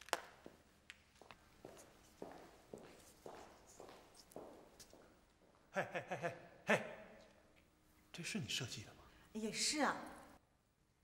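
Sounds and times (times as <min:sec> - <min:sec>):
quiet footsteps: 0:00.0 - 0:05.7.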